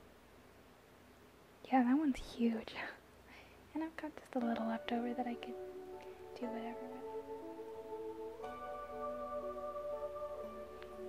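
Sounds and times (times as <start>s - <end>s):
woman speaking softly: 1.6s - 3.0s, 3.7s - 5.6s, 6.4s - 7.0s
woman whispering: 1.8s - 3.0s, 6.4s - 7.0s.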